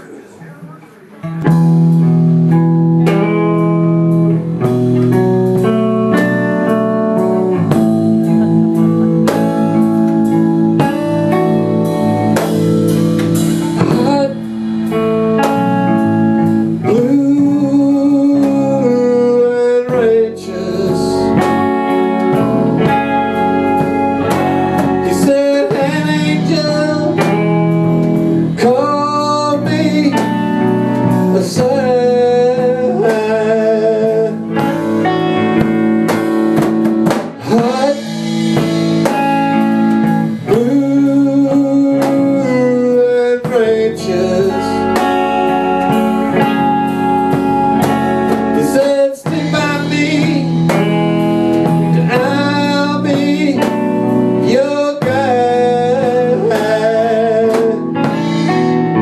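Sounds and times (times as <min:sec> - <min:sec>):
blues band playing: 0:00.0 - 0:59.0
man singing: 0:03.0 - 0:59.0.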